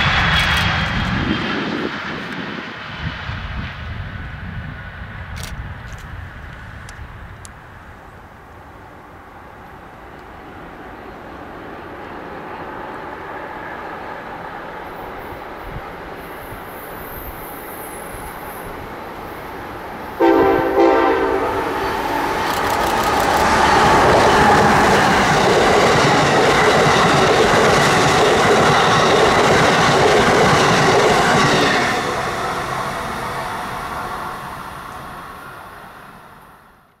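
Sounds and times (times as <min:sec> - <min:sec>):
rush of passing train: 0:00.0 - 0:37.0
train rumble: 0:00.0 - 0:37.0
train horn: 0:20.1 - 0:22.4.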